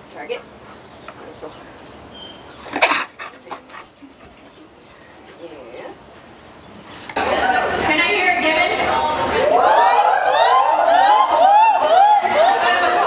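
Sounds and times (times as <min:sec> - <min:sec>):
wild dog whimpering: 0:02.2 - 0:04.6.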